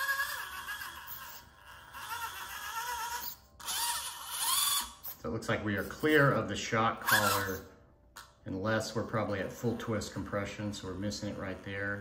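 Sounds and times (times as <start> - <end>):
steering servo whining: 2.0 - 5.0.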